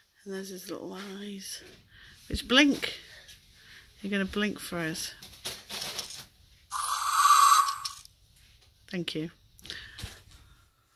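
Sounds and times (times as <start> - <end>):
toy dinosaur growl: 6.7 - 8.0.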